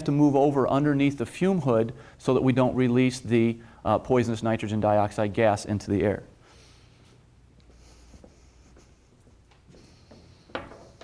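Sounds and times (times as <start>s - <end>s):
room hum: 0.0s - 11.0s
faint footsteps: 6.7s - 11.0s.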